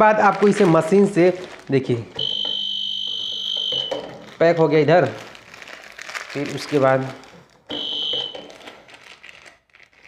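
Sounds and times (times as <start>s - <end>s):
high electronic beep: 2.2s - 4.0s, 7.7s - 8.4s.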